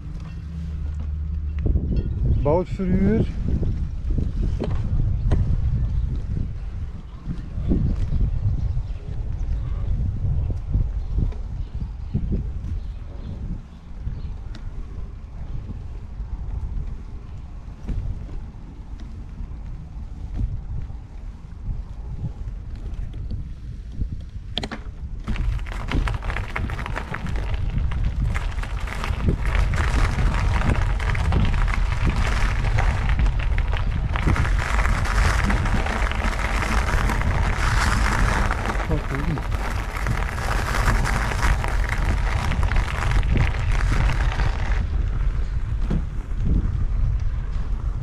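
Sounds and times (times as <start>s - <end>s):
wind rumble on microphone: 0.0s - 48.0s
crunching on gravel path: 25.2s - 48.0s.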